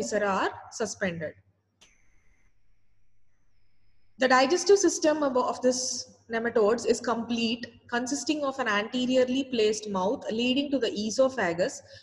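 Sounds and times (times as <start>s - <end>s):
faint high-pitched whine: 1.8s - 5.8s
faint low hum: 1.8s - 5.8s.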